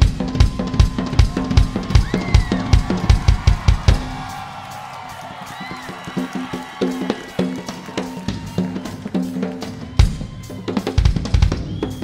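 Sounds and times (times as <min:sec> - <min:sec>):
fast bass drum strokes: 0:00.0 - 0:09.0.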